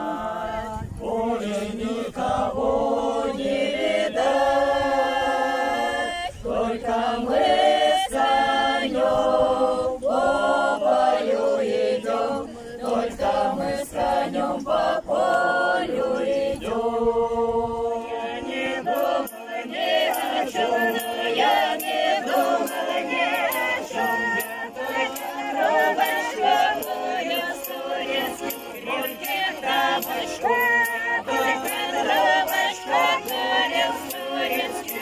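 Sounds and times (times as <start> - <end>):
women's choir singing folk song: 0.0 - 35.0.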